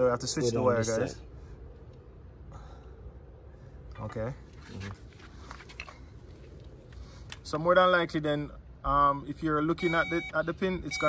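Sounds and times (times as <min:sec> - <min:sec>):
low background rumble: 0:00.0 - 0:09.7.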